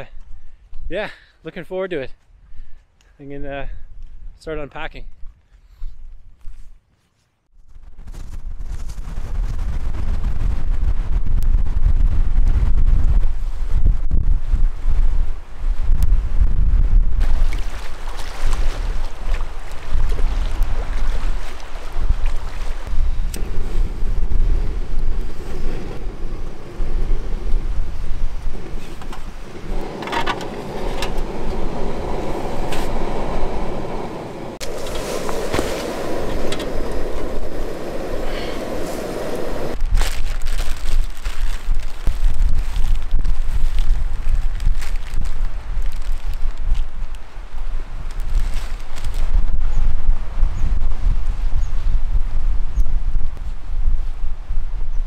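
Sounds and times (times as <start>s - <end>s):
wind buffeting microphone: 7.7s - 55.0s
camping stove burning: 23.3s - 39.8s.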